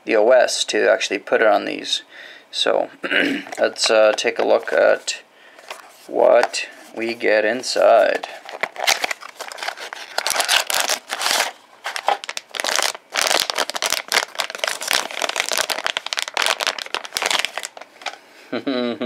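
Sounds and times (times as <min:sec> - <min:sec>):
plastic wrapping crinkling: 0:07.7 - 0:18.2
man laughing: 0:18.5 - 0:19.0.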